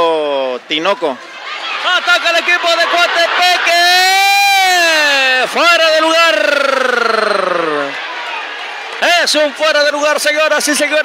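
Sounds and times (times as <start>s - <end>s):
background noise: 0.0s - 11.0s
man commentating excitedly: 1.8s - 8.0s, 9.0s - 11.0s.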